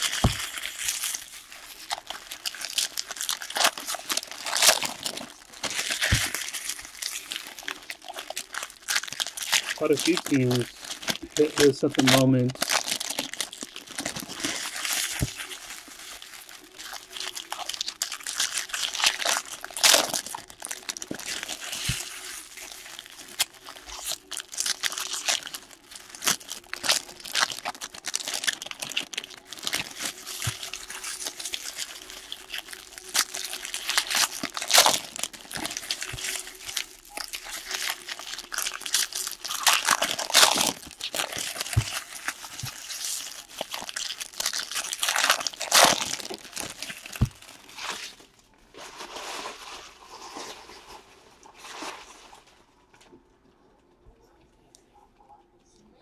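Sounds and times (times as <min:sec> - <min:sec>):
foil wrappers crinkling and tearing: 0:00.0 - 0:52.6.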